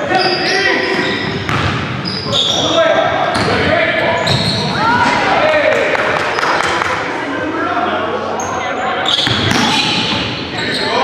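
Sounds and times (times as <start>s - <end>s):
players' voices: 0.0s - 11.0s
basketball bouncing on wooden court: 1.4s - 1.9s.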